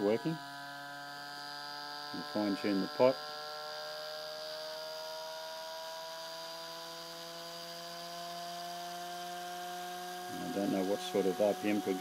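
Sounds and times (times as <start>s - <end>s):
motor whine: 0.0s - 12.0s.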